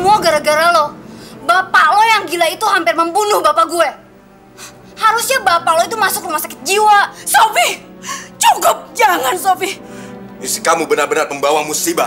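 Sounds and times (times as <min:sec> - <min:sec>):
woman speaking sharply: 0:00.0 - 0:04.0, 0:05.0 - 0:07.8, 0:08.4 - 0:09.8.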